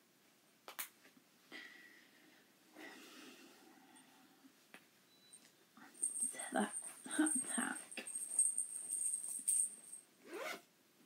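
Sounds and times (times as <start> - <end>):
cloth and yarn rustling: 6.0 - 10.5.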